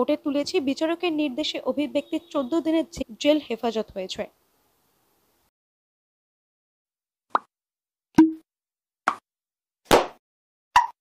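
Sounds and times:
short pop sound effects: 8.2s - 8.4s, 9.9s - 10.2s.

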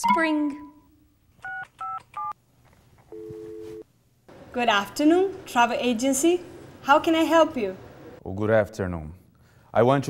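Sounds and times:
touch-tone dialing beeps: 1.4s - 2.4s.

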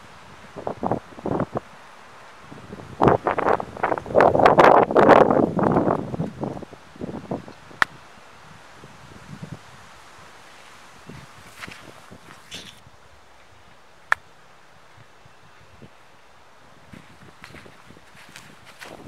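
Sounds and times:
wind gusting over microphone: 0.0s - 13.8s, 14.8s - 19.0s.

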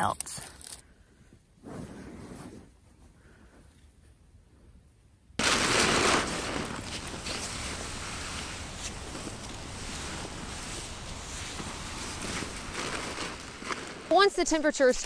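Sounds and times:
nylon quilt rustling: 5.4s - 14.9s.

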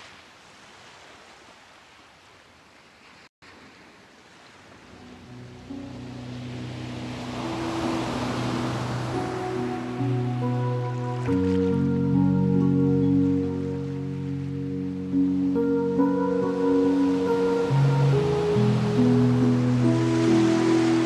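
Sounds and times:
ocean surf: 0.0s - 21.0s
new-age sustained chords: 4.9s - 21.0s.

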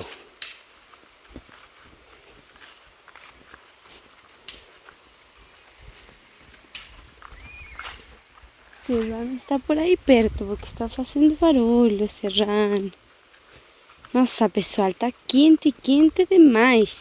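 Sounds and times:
footsteps on rocky dirt trail: 0.0s - 17.0s.

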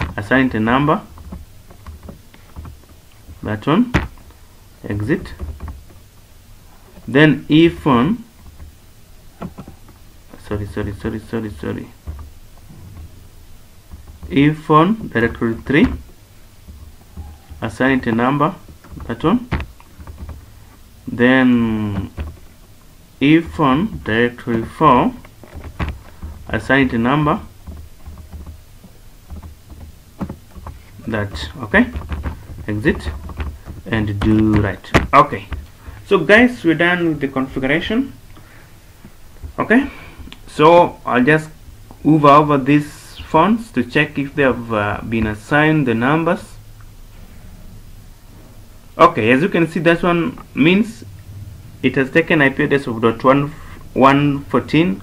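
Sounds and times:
low steady hum: 0.0s - 55.0s
keyboard typing: 13.9s - 36.6s.

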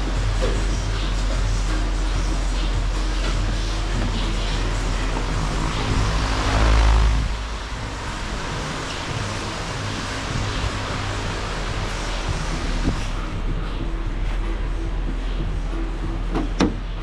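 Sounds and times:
air buffeting microphone: 0.0s - 17.0s
pedestal fans whirring: 0.0s - 17.0s.

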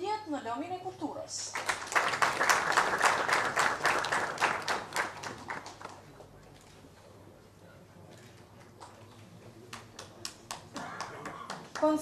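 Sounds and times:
applause: 1.5s - 6.2s, 9.7s - 12.0s.

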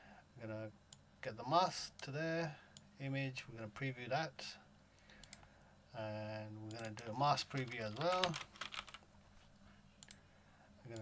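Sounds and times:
computer mouse clicks: 5.0s - 5.5s, 10.0s - 10.2s.

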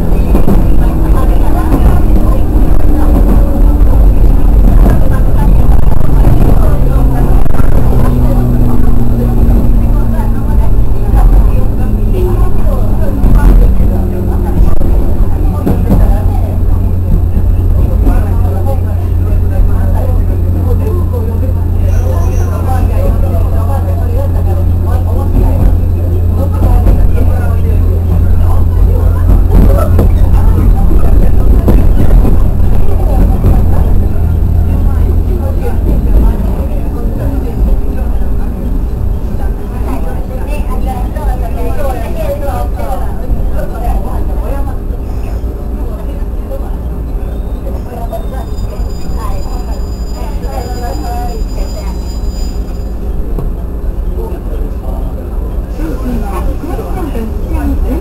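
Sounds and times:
wheel and rail rumble: 0.0s - 58.0s.

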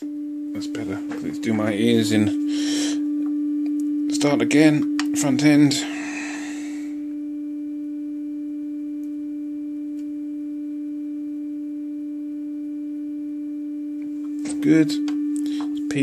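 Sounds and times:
low test tone from loudspeaker: 0.0s - 16.0s.

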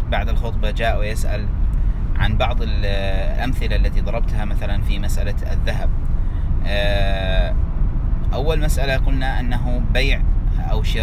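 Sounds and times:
low vehicle rumble: 0.0s - 11.0s.

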